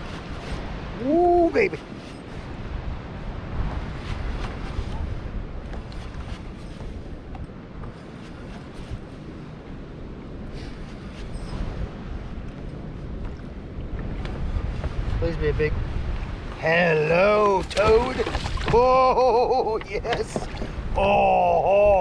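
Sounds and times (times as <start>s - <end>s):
wind buffeting microphone: 0.0s - 22.0s
water lapping on kayak hull: 16.4s - 21.0s.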